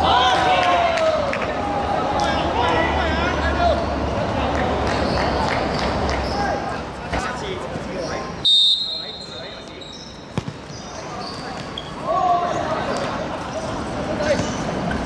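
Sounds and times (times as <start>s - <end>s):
referee whistle blast: 8.4s - 9.5s.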